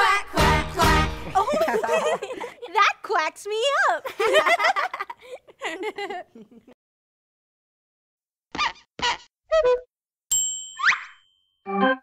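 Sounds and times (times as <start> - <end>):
bright ding: 10.3 - 11.6.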